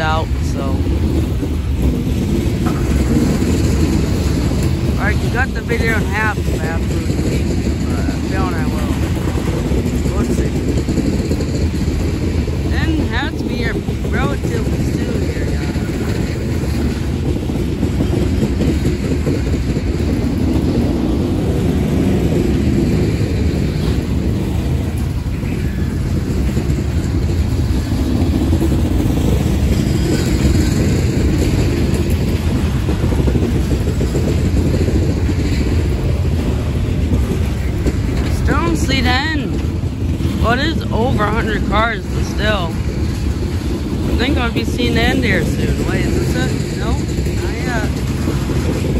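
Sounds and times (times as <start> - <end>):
train wheels rumbling on rails: 0.0 - 48.9.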